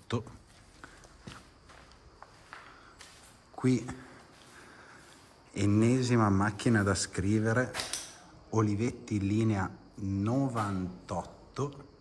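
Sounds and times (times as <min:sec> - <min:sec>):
soft footsteps on dusty floor: 0:00.1 - 0:07.7.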